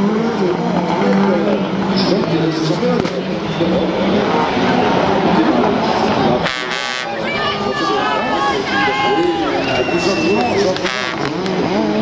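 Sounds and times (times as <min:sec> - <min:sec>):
race car engines running hard: 0:00.0 - 0:12.0.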